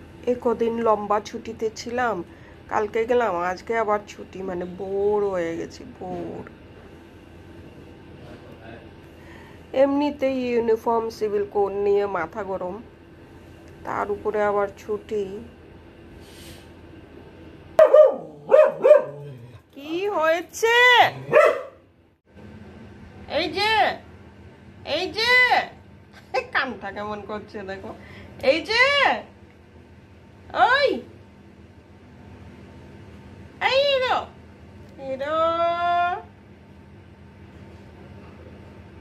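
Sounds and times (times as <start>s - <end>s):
small dog barking: 17.8s - 19.4s, 21.2s - 21.8s.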